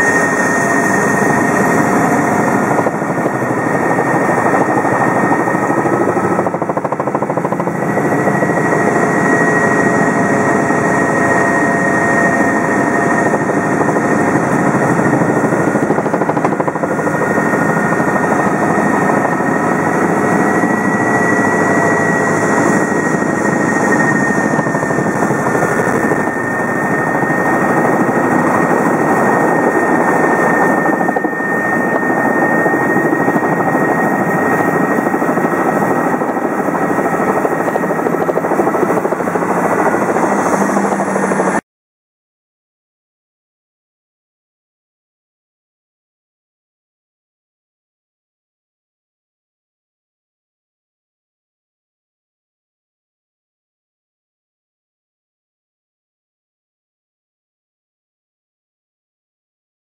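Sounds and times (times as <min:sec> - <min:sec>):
helicopter rotor and engine: 0:00.0 - 0:41.6
high steady whine: 0:19.9 - 0:41.6.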